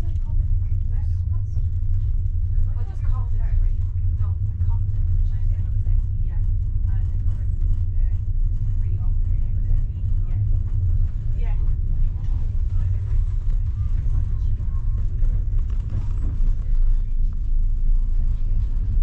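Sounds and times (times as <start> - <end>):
faint voices: 0.0 - 19.0
train rumble from inside carriage: 0.0 - 19.0.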